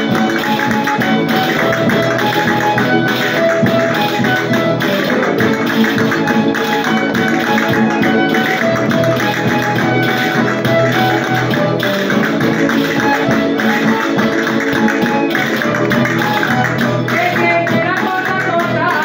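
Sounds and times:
acoustic guitars: 0:00.0 - 0:19.0
violin: 0:00.0 - 0:19.0.

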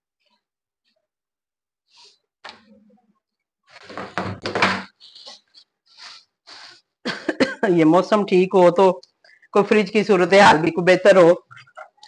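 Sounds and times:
woman coughing: 0:07.0 - 0:07.8
woman clearing her throat: 0:07.1 - 0:07.7.

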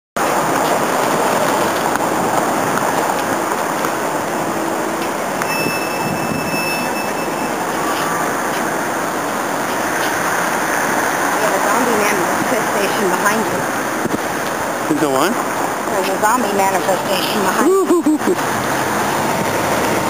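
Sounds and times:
street traffic noise: 0:00.2 - 0:20.0
thin high-pitched whine: 0:05.4 - 0:08.3.

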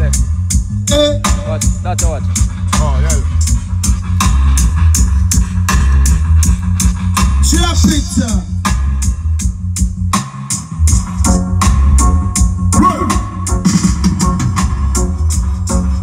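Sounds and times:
bass-heavy music over speakers: 0:00.0 - 0:16.0
ticking hi-hat beat: 0:00.0 - 0:16.0.

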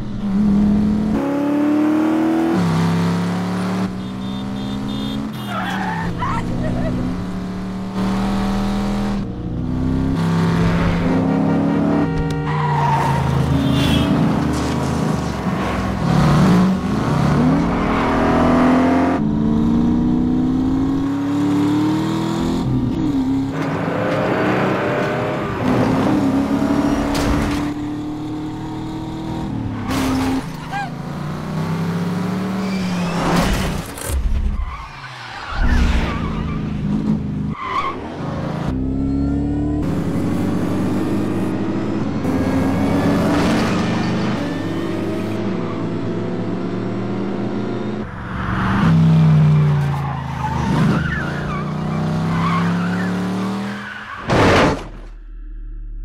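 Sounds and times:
car engines revving hard: 0:00.0 - 0:34.0, 0:35.5 - 0:54.8.

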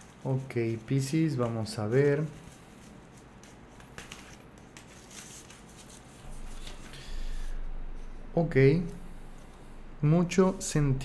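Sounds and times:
cards rustling: 0:00.0 - 0:07.5
low rumble: 0:06.1 - 0:11.0.

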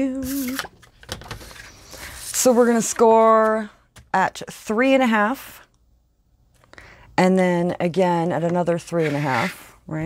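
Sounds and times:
paper sliding: 0:08.9 - 0:09.7.

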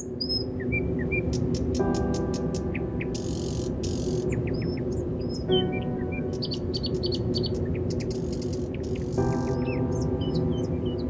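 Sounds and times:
ambient music pad: 0:00.0 - 0:11.0
birds chirping: 0:00.0 - 0:11.0.

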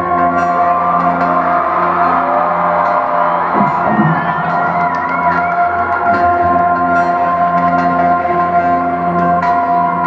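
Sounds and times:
crowd cheering and whooping: 0:00.0 - 0:10.0
live concert droning music: 0:00.0 - 0:10.0.

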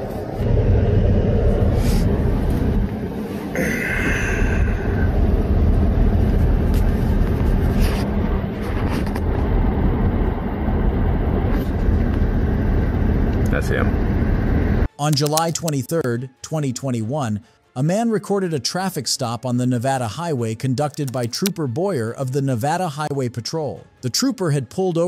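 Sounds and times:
highway traffic passing: 0:00.0 - 0:13.4
low vehicle rumble: 0:00.0 - 0:14.9.

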